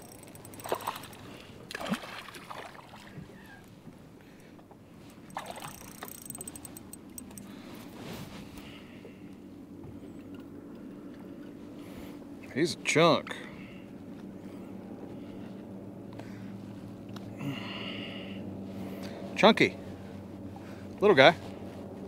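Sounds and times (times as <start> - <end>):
fishing reel ticking: 0.0 - 1.5, 5.1 - 7.5
fish splashing: 0.0 - 3.3, 5.1 - 7.1
water lapping: 0.0 - 7.8
low steady hum: 0.0 - 22.0.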